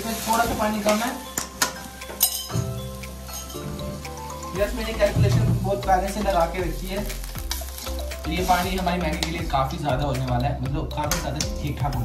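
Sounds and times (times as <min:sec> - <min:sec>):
background music: 0:00.0 - 0:12.0
utensil clinking on wok: 0:00.1 - 0:04.6.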